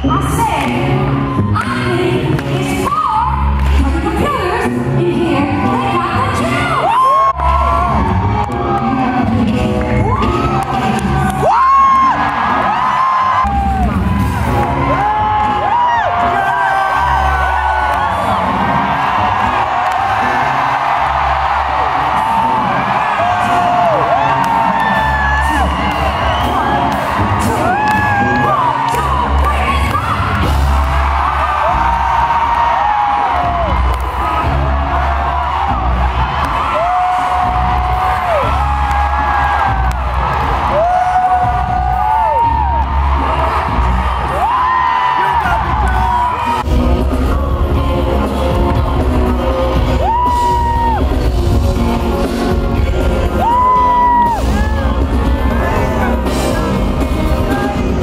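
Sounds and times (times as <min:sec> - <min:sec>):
live band with heavy bass: 0:13.4 - 0:58.0
lead singer singing: 0:44.3 - 0:58.0.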